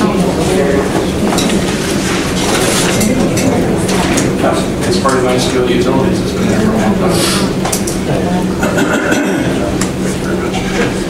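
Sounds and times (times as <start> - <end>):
overlapping chatter: 0.0 - 11.0
steady low hum: 0.0 - 11.0.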